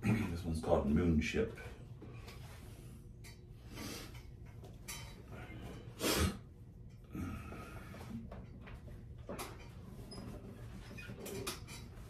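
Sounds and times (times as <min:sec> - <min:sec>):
man breathing: 0:05.3 - 0:08.3.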